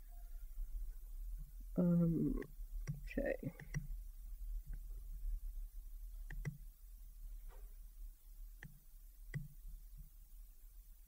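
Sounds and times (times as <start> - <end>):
low electrical hum: 0.0 - 11.0
faint clicks: 2.4 - 3.9, 6.2 - 6.6, 8.6 - 10.1.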